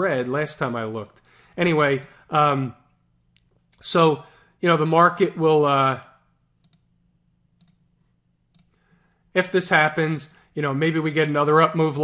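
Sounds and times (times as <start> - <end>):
faint clicks: 6.6 - 6.9, 7.6 - 7.8, 8.5 - 9.0.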